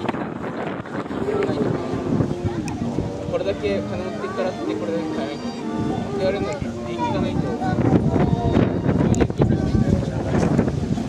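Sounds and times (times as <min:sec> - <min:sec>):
indistinct chatter: 0:00.0 - 0:11.0
wind buffeting microphone: 0:00.0 - 0:11.0.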